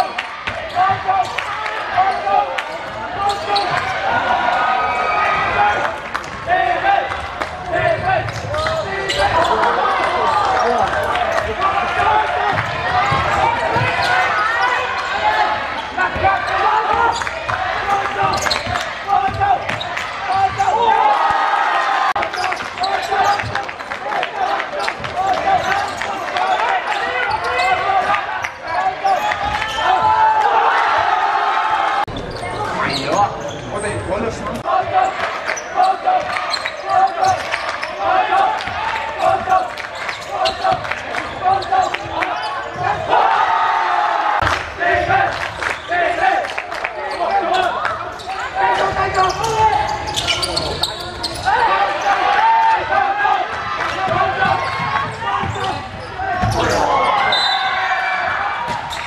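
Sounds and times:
people talking and shouting: 0.0s - 59.0s.

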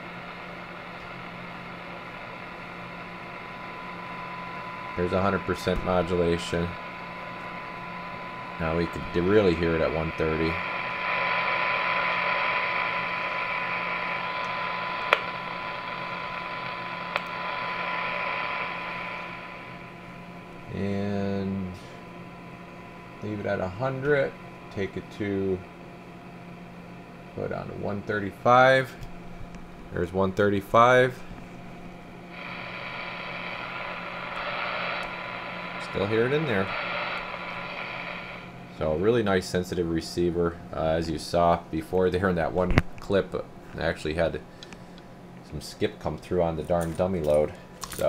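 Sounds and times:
radio receiver static: 0.0s - 20.6s, 31.9s - 39.2s
steady test tone: 0.0s - 21.4s, 30.1s - 40.4s.

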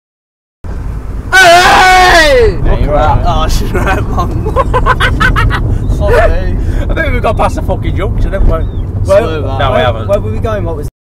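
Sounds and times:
car cabin road noise: 0.7s - 10.9s.

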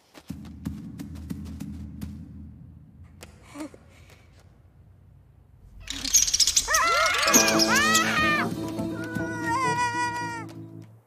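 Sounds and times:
high animal yelps: 6.6s - 8.4s.

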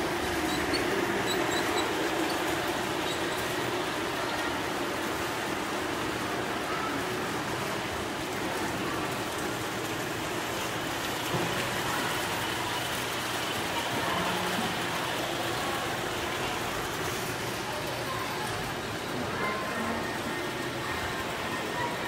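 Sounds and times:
waterfall into pond: 0.2s - 22.0s.

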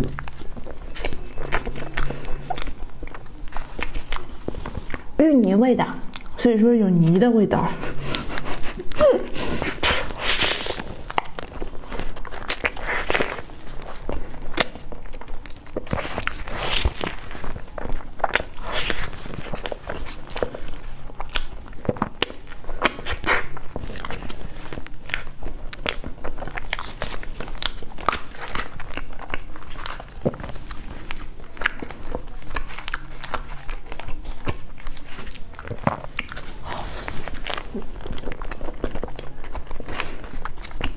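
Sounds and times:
chewing pastry: 0.0s - 40.9s
paper liner crinkling: 7.8s - 40.9s.

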